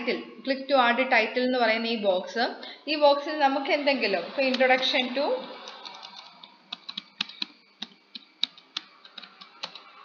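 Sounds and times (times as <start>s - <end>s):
computer keyboard keystrokes: 5.6s - 10.0s.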